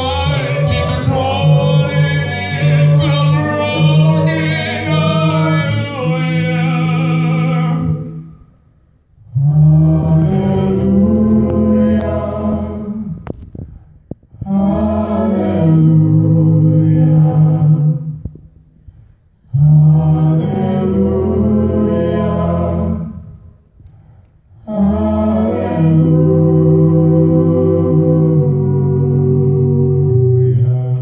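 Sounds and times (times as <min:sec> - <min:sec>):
vocal group singing held chords: 0:00.0 - 0:08.7, 0:09.3 - 0:13.4, 0:14.4 - 0:18.3, 0:19.5 - 0:31.0.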